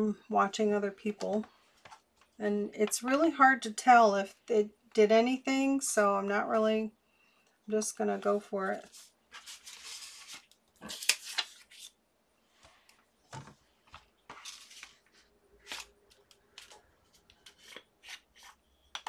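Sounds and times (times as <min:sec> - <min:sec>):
paper rustling: 0:08.8 - 0:12.0, 0:13.3 - 0:18.6.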